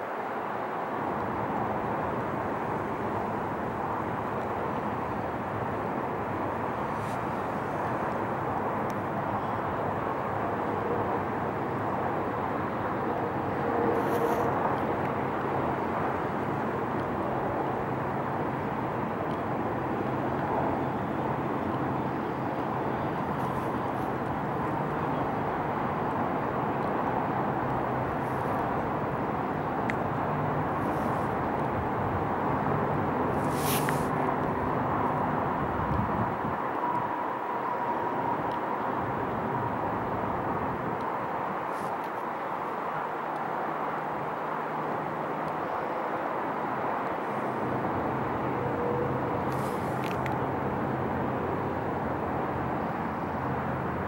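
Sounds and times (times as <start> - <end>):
outdoor background rush: 0.0 - 54.0.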